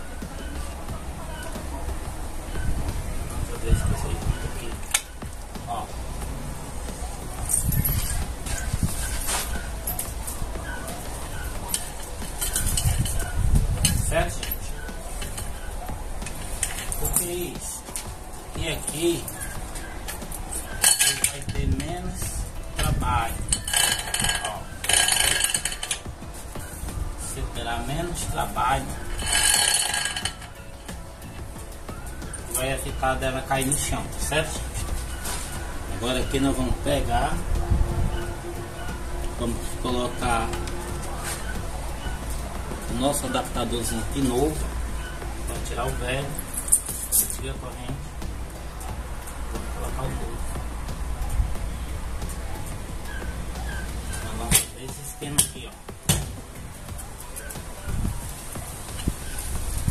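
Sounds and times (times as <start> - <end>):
drive chain rattling and clinking: 7.4 - 17.5, 20.1 - 26.7, 27.7 - 30.7.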